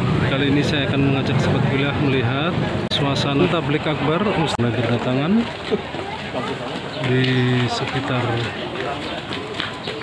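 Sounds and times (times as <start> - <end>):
man speaking: 0.1 - 5.5.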